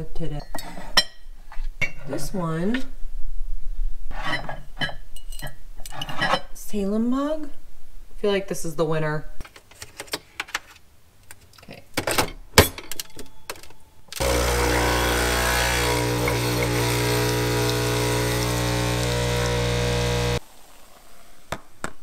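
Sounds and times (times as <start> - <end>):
espresso pump buzzing hum: 14.2 - 20.7.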